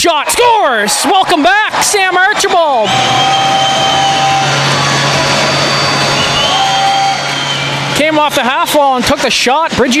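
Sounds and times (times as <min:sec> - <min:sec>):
crowd cheering: 0:00.0 - 0:09.5.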